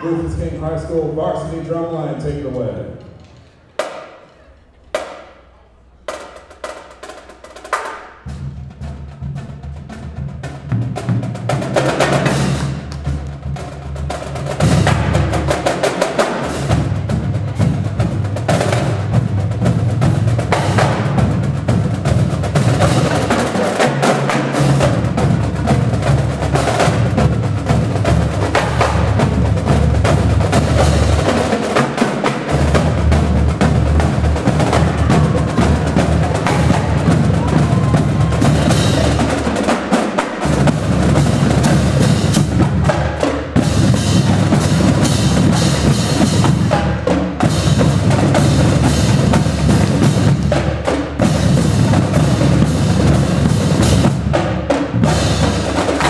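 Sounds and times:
marching drumline playing: 0:03.6 - 0:56.0.

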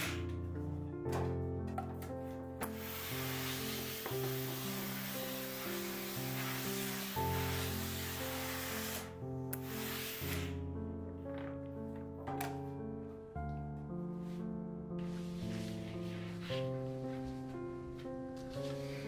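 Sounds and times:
music of sustained notes: 0:00.0 - 0:19.0
steam iron hissing: 0:02.6 - 0:10.6.

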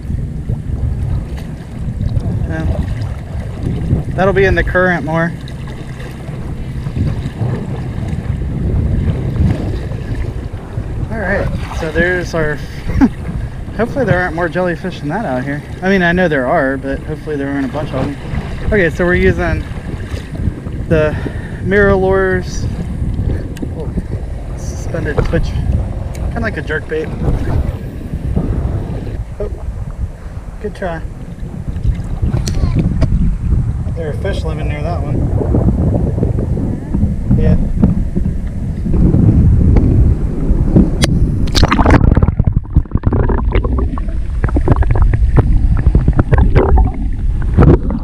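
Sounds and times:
water sloshing and lapping: 0:00.0 - 0:33.5, 0:40.7 - 0:48.0
wind buffeting microphone: 0:00.0 - 0:48.0.

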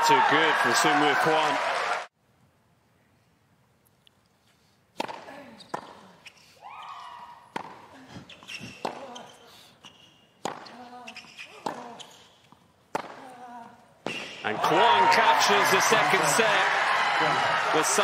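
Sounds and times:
ball bouncing: 0:05.0 - 0:06.0, 0:07.5 - 0:07.8, 0:10.4 - 0:10.7, 0:11.6 - 0:13.3
racquet hitting tennis ball: 0:05.0 - 0:06.0, 0:07.5 - 0:07.9, 0:08.5 - 0:09.2, 0:10.4 - 0:12.2, 0:12.9 - 0:13.3.

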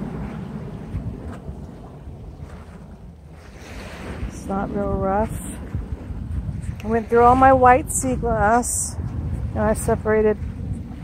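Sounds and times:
small waves washing on shore: 0:00.0 - 0:11.0
wind buffeting microphone: 0:00.0 - 0:11.0.

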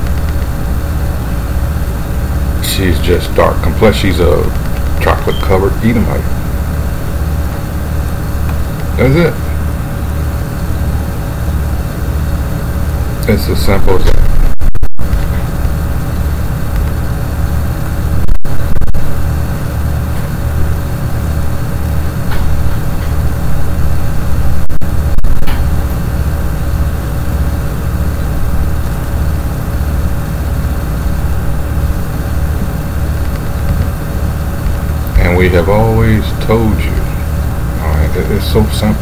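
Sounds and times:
low pulsing rumble: 0:04.4 - 0:39.0.

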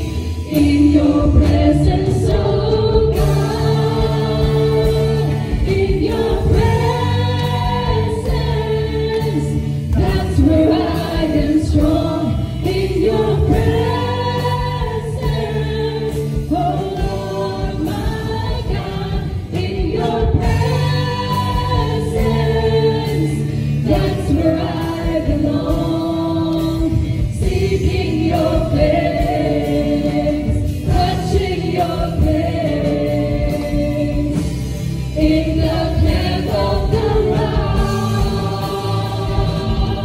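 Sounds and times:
amplified band with guitar and drums: 0:00.0 - 0:40.0
singers singing praise song: 0:00.0 - 0:40.0.

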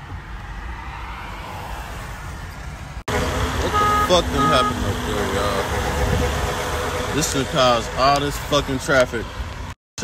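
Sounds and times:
engine and road rumble in car: 0:00.0 - 0:09.8.

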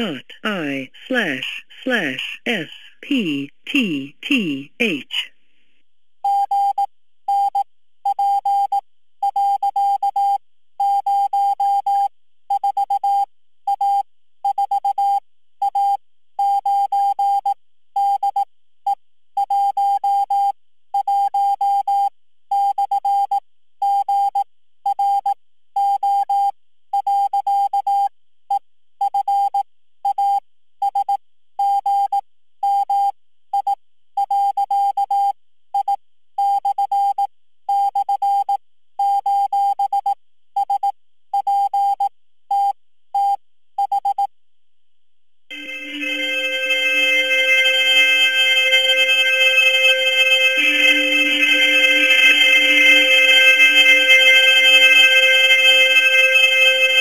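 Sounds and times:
morse code beeps: 0:45.5 - 0:57.0.

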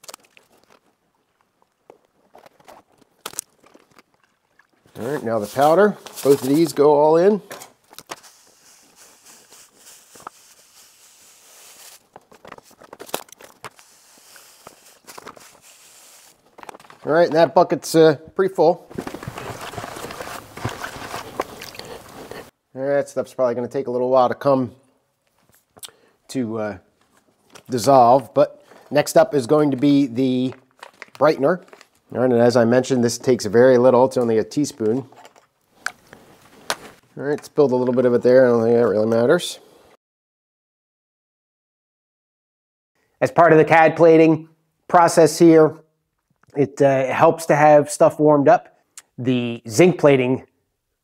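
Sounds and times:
plastic bag crinkling: 0:01.6 - 0:17.3, 0:18.9 - 0:22.5, 0:29.4 - 0:32.2
faint handling noise: 0:04.9 - 0:10.8, 0:18.9 - 0:22.5
powder pouring into liquid: 0:08.2 - 0:12.2, 0:13.4 - 0:16.4.

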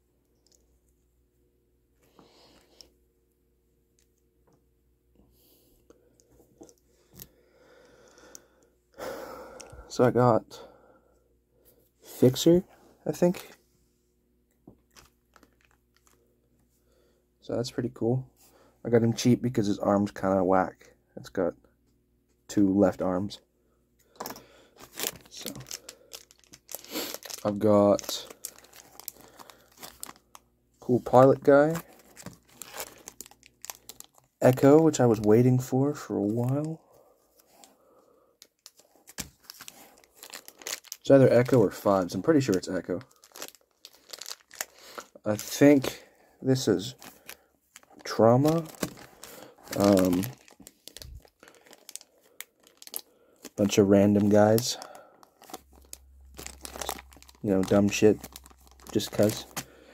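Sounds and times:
plastic bags rustling: 0:14.9 - 0:16.2, 0:24.2 - 0:35.4, 0:38.6 - 0:59.9.

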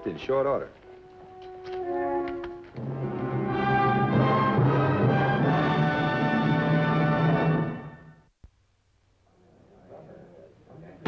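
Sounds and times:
orchestral music: 0:00.8 - 0:08.1.

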